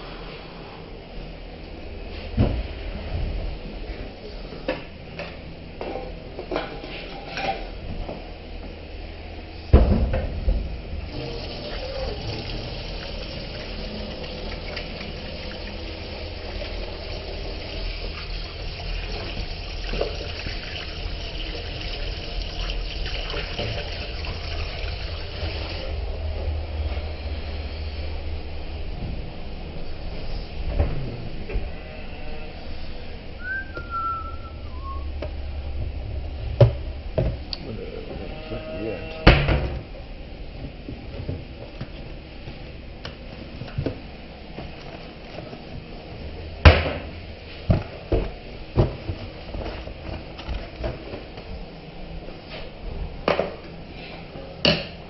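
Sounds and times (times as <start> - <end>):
tap water running into metal sink: 11.1 - 25.8.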